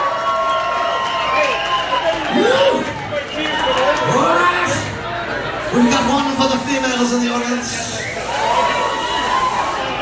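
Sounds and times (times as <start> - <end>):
club audience noise: 0.0 - 10.0.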